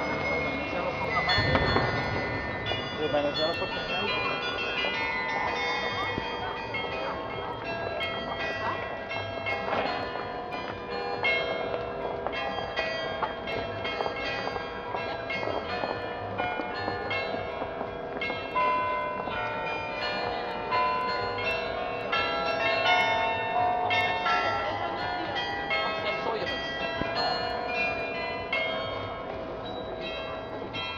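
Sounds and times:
carillon bells playing a melody: 0:00.0 - 0:30.9.

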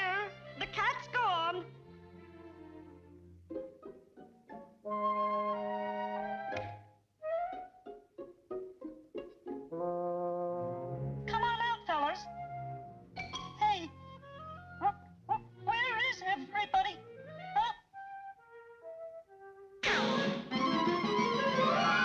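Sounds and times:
orchestral cartoon music: 0:00.0 - 0:22.0
wavering high cry: 0:21.5 - 0:22.0.

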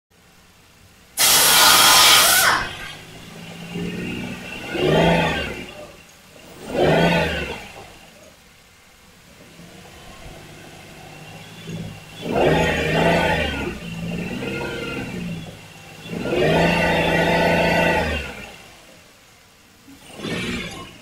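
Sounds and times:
car engine idling: 0:00.1 - 0:21.0
car engine revving: 0:00.6 - 0:21.0
car engine cranking: 0:01.2 - 0:21.0.

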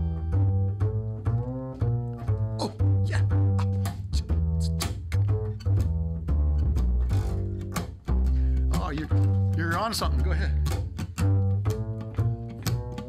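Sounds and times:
plucked upright double bass: 0:00.0 - 0:13.0.

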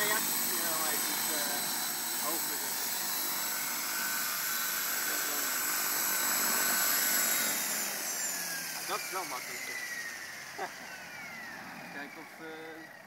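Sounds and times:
helicopter motor whine: 0:00.0 - 0:13.0
rotor rushing: 0:00.0 - 0:13.0.

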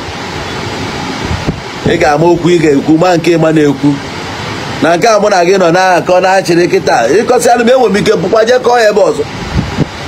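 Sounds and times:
steady background noise: 0:00.0 - 0:10.0
man talking: 0:01.8 - 0:04.1, 0:04.8 - 0:09.3.

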